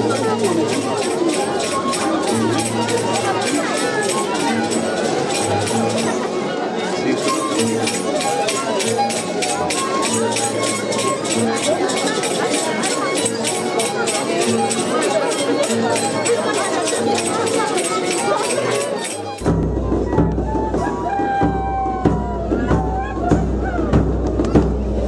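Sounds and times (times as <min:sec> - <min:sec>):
crowd chatter: 0:00.0 - 0:25.0
festival music with fast beat: 0:19.4 - 0:25.0.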